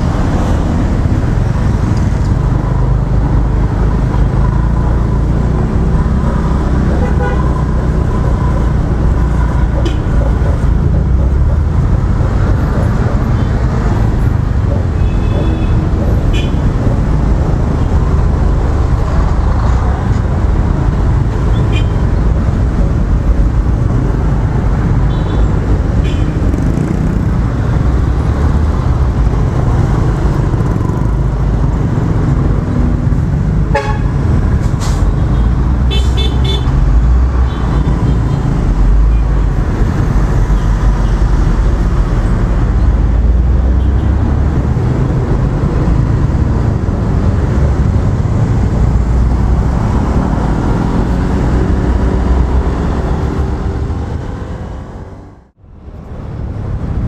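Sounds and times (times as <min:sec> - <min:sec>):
scooter engine and road noise: 0:00.0 - 0:57.0
vehicle horn toots: 0:33.7 - 0:34.1.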